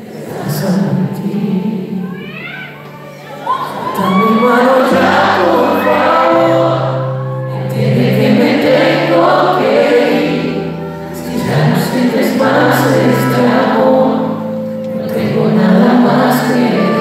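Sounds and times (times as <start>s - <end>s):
people singing: 0.0s - 2.0s, 3.4s - 17.0s
keyboard: 0.0s - 17.0s
guitar: 1.9s - 17.0s.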